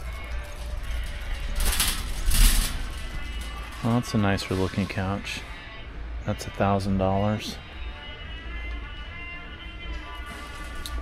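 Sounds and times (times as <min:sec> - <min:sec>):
shopping cart rolling and rattling: 0:00.0 - 0:05.5, 0:10.2 - 0:11.0
faint background music: 0:00.0 - 0:11.0.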